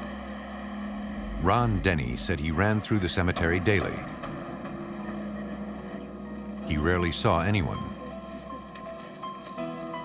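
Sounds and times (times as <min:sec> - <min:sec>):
steady low drone: 0:00.0 - 0:10.0.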